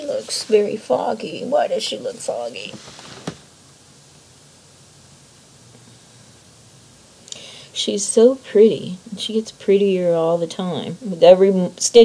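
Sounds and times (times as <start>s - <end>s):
faint room tone hiss: 0.0s - 12.0s.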